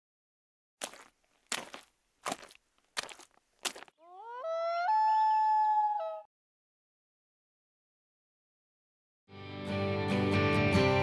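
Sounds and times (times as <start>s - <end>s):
rising call holding steady pitch: 4.0s - 6.2s.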